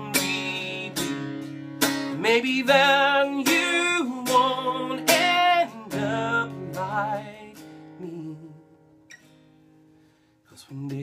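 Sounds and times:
man singing with vibrato: 0.0 - 8.9, 10.5 - 11.0
strummed acoustic guitar: 0.0 - 11.0.

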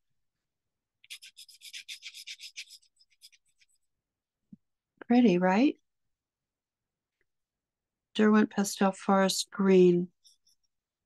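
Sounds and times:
pencil rubbing on paper: 1.0 - 3.9, 10.1 - 10.8.

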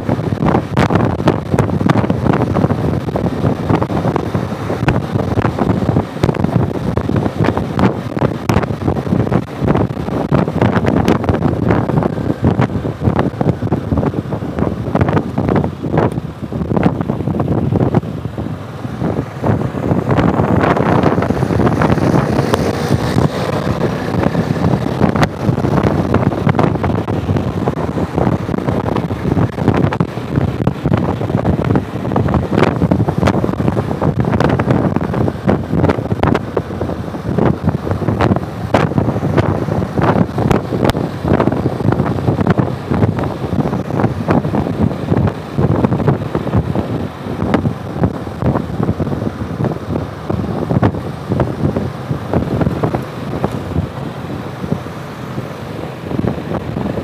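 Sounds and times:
motorcycle engine: 0.0 - 57.0
wind buffeting microphone: 0.0 - 57.0.

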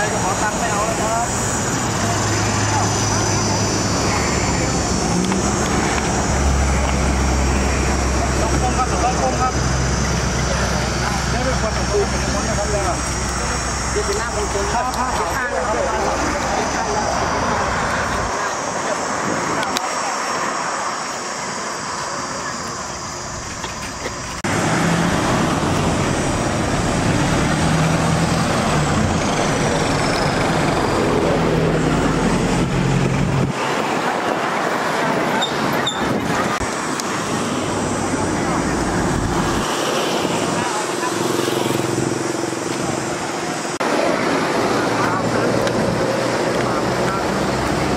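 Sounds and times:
highway traffic passing: 0.0 - 47.9
people's voices: 0.0 - 47.9.

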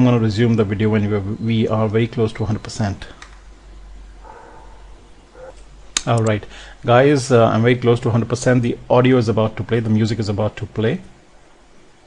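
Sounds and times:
low electrical hum: 0.0 - 12.0
sharp click: 5.9 - 6.4.

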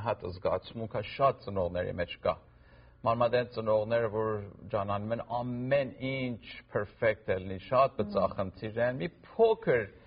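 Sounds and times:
man talking: 3.0 - 10.0.

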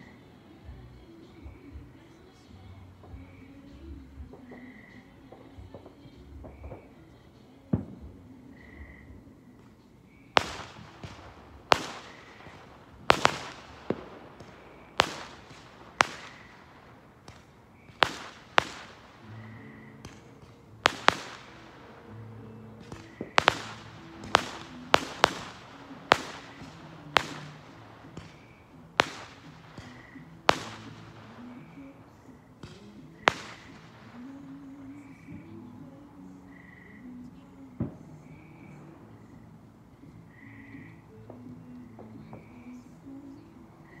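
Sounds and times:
fireworks bangs: 3.0 - 35.5.

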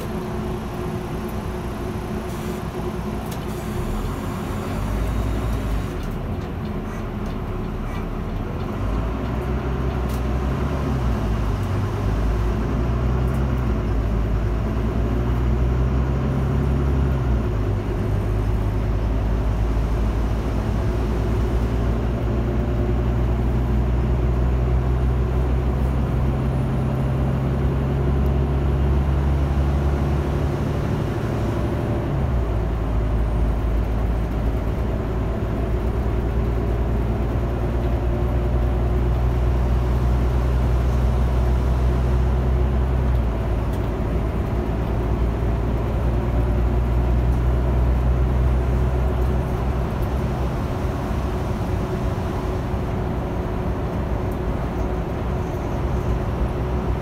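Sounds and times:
bus engine droning: 0.0 - 57.0.

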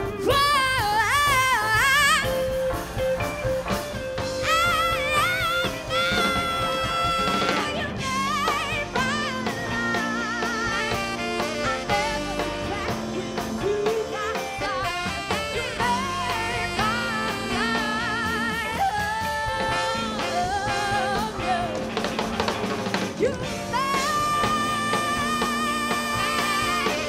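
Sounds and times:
lead melody with vibrato: 0.0 - 22.8
drum kit: 0.0 - 27.0
electric guitar: 0.0 - 27.0
keyboard: 0.0 - 27.0.

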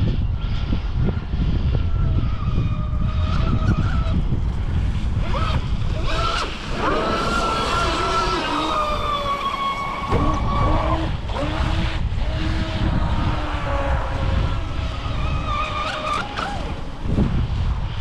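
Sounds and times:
electric motor whining: 0.0 - 18.0
wind rumble on microphone: 0.0 - 18.0.

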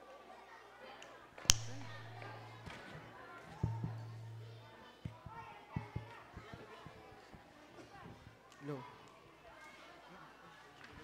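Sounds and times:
sharp microphone click: 1.5 - 2.7
dull thumps and knocks: 3.6 - 7.0.

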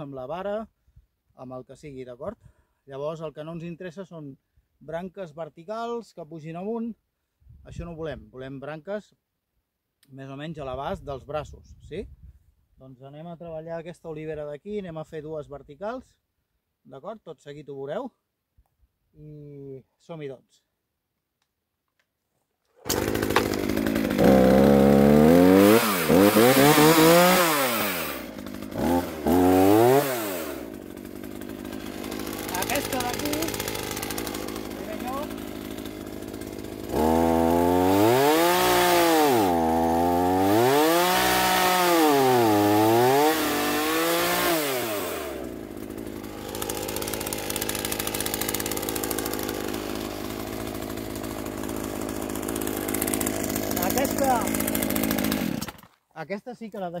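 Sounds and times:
chainsaw cutting wood: 22.7 - 56.1
chainsaw starting and revving: 22.7 - 56.1.

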